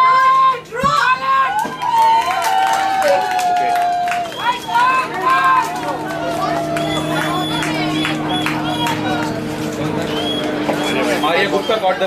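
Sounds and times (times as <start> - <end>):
children calling and chattering: 3.0 - 12.0
steady low hum: 3.8 - 12.0.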